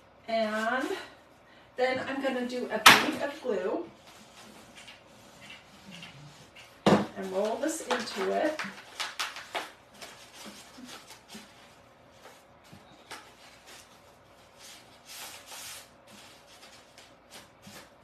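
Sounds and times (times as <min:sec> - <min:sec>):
paper rustling and rubbing: 0:03.9 - 0:18.0.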